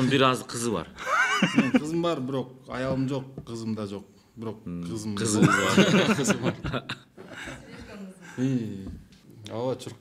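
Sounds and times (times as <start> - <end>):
men talking and laughing: 1.0 - 2.1, 5.2 - 9.0.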